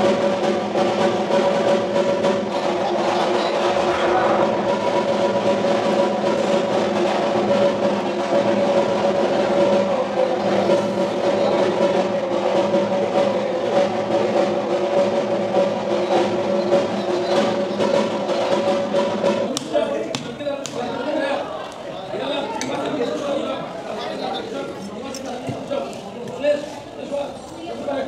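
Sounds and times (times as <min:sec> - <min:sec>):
drum roll: 0:00.0 - 0:20.5.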